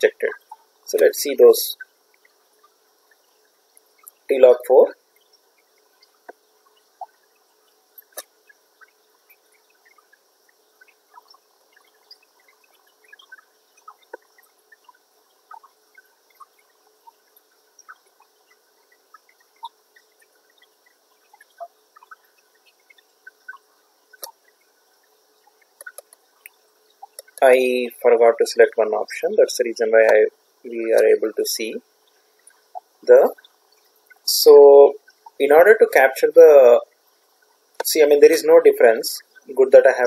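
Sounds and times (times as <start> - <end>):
small sharp clicks: 8.0 - 24.7, 25.4 - 27.4.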